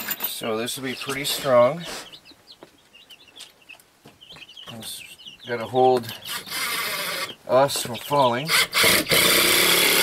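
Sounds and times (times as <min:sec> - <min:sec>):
faint chirping bird calls: 0:00.6 - 0:08.6.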